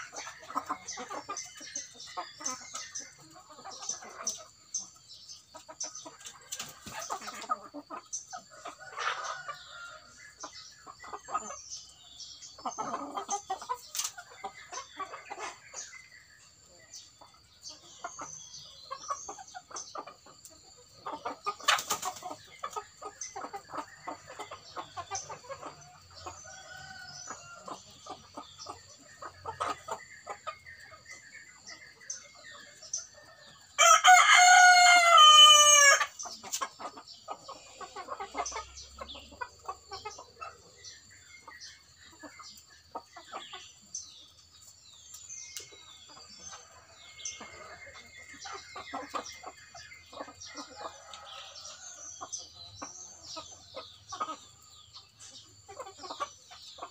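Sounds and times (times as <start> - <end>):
chickens clucking: 0.0 - 56.9
rooster crowing: 33.8 - 36.1.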